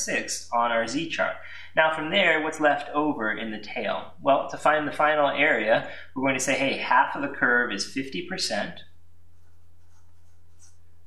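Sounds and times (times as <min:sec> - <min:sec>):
steady low hum: 0:00.0 - 0:11.0
marker writing on paper: 0:09.4 - 0:10.9.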